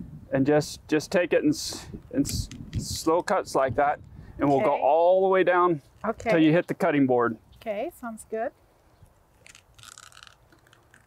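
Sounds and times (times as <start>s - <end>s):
knife crunching through fish bones: 9.4s - 11.0s.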